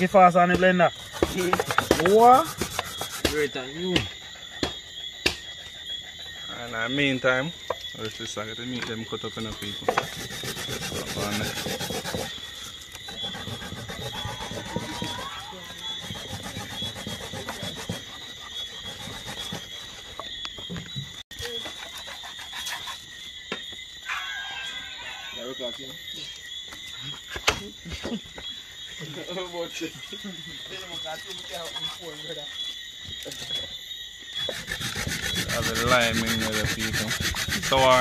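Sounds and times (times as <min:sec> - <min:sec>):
night insects chirring: 0:00.0 - 0:38.0
knife sawing through meat: 0:01.1 - 0:03.5, 0:10.0 - 0:20.0, 0:21.5 - 0:23.1, 0:34.4 - 0:38.0.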